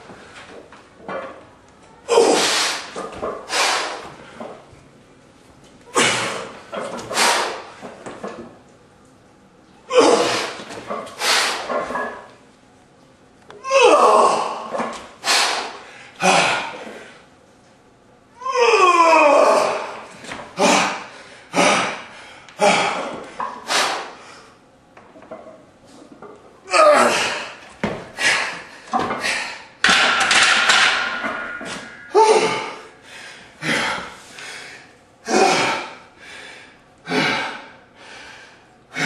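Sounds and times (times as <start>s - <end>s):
man groaning: 13.6s - 14.9s, 16.2s - 16.8s, 18.4s - 20.0s, 26.7s - 27.6s, 32.0s - 32.9s
man breathing forcefully and grunting: 14.1s - 17.2s, 20.6s - 24.5s, 26.8s - 29.8s, 31.8s - 39.0s.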